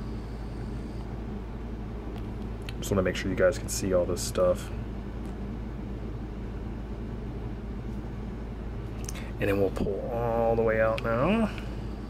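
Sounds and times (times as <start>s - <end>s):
low room hum and hiss: 0.0s - 12.0s.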